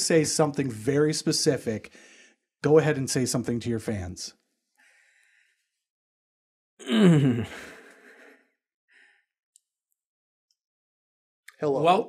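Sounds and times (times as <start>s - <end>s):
faint breath: 1.9s - 2.5s, 4.7s - 5.9s, 7.5s - 9.3s
person sighing exhale: 6.8s - 8.2s.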